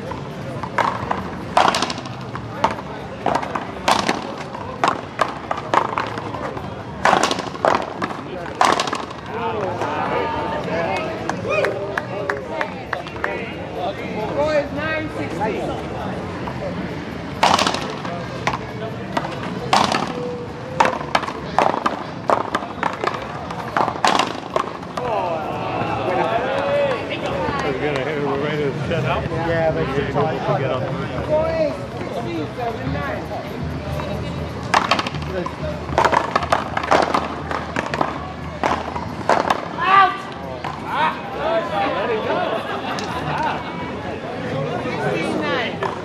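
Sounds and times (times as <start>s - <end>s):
paddles cracking against ball: 0.5s - 10.0s, 17.4s - 25.2s, 34.6s - 40.8s.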